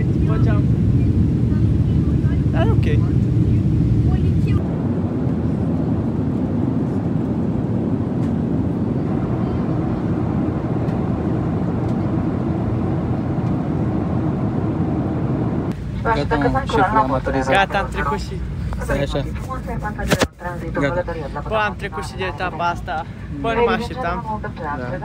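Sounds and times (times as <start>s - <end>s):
jet cabin engine rumble: 0.0s - 25.0s.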